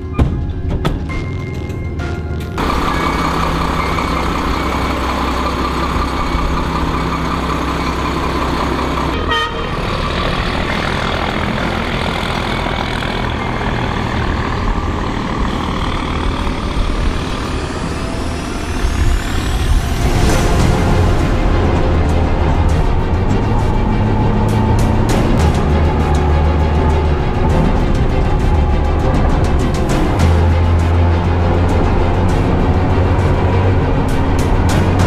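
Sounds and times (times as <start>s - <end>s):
diesel truck engine running: 0.0s - 35.0s
high whine rising in pitch: 12.8s - 35.0s.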